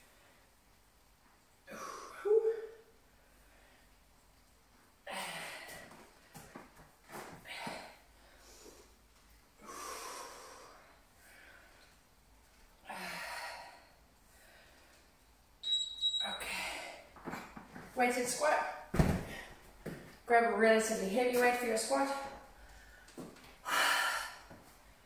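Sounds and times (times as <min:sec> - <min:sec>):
woman breathing hard: 0:07.4 - 0:12.0, 0:12.8 - 0:15.1, 0:22.6 - 0:25.0.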